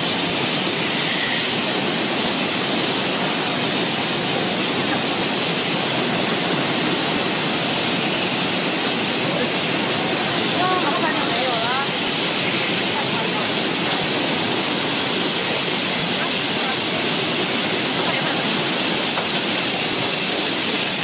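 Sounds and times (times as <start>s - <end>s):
washing machine water rushing: 0.0s - 21.0s.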